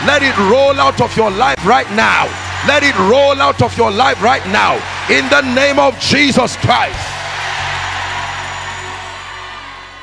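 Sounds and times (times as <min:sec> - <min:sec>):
congregation shouting: 0:00.0 - 0:10.0.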